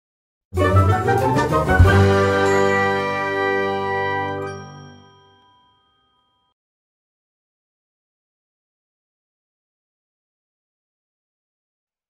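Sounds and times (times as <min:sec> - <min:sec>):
bell-like chime notes: 0:01.9 - 0:06.6.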